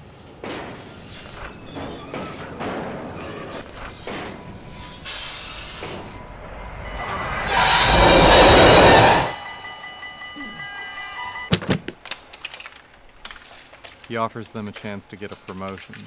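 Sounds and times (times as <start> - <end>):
train rushing past: 1.0 - 11.5
high squealing tones: 1.1 - 11.5.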